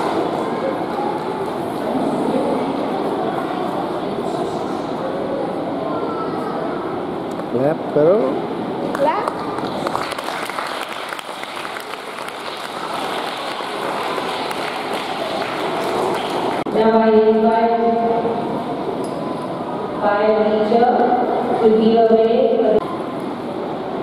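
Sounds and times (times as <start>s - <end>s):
voices with long held pitches: 0.0s - 24.0s
audience applauding: 8.9s - 16.7s.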